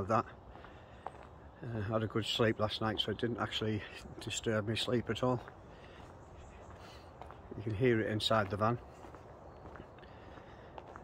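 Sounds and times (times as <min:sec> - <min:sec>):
distant motorway traffic hum: 0:00.0 - 0:11.0
faint footsteps on tarmac: 0:00.0 - 0:11.0.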